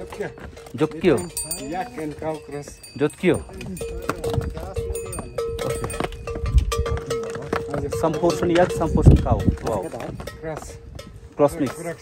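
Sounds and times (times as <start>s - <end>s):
animal bells clanking: 0.0s - 12.0s.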